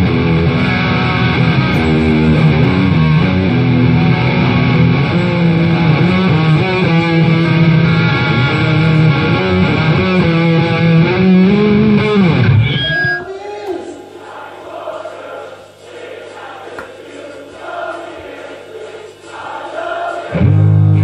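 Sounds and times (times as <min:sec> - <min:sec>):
distorted electric guitar chords: 0:00.0 - 0:13.2, 0:20.3 - 0:21.0
rock song with singing: 0:00.0 - 0:13.2.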